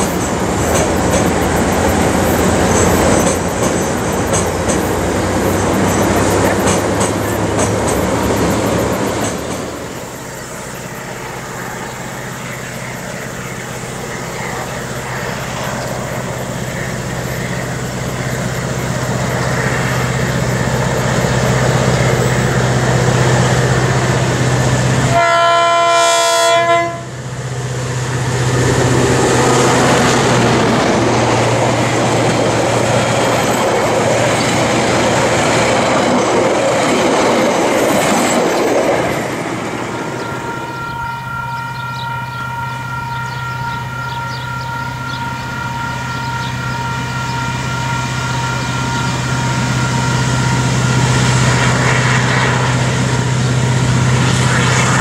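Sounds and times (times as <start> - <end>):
train wheels clicking on bridge: 0.0 - 11.6, 28.4 - 40.2
carriages rumbling: 0.0 - 25.2, 27.9 - 55.0
diesel locomotive engine drone: 0.0 - 55.0
train horn: 23.7 - 27.2, 39.6 - 55.0.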